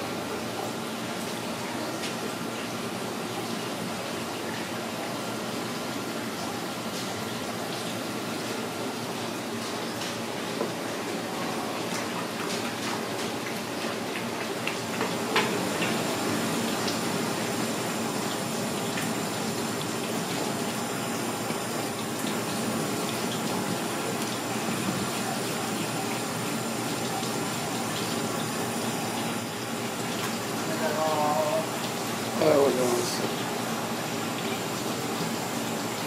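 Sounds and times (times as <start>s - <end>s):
tap water running onto board: 7.0s - 36.0s.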